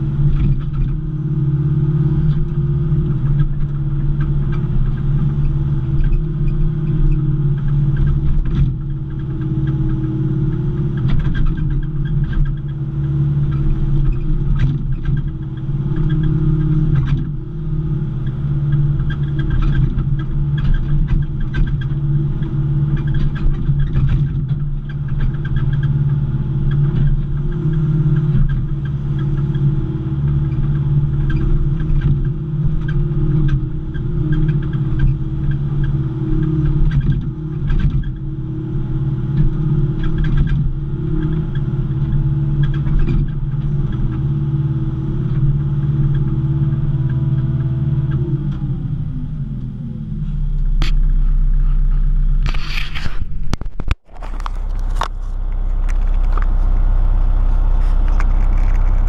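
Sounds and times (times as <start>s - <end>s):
excavator diesel engine running: 0.0s - 59.0s.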